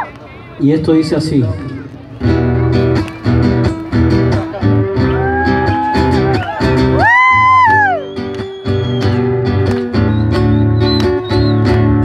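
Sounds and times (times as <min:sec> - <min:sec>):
acoustic guitar strumming: 0:02.2 - 0:12.0.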